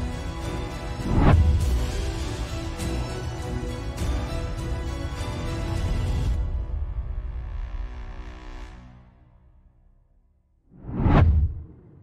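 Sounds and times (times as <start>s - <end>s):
whoosh with deep rumble: 10.7s - 12.0s.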